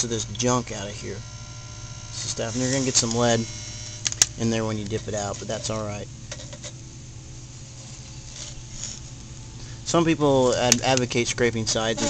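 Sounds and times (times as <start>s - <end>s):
steady low hum: 0.0s - 12.0s
metal tool scraping a pot: 4.9s - 6.8s.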